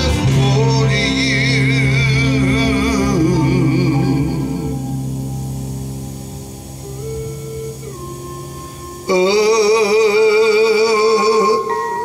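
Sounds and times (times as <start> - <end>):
slow soul ballad backing track: 0.0 - 12.0.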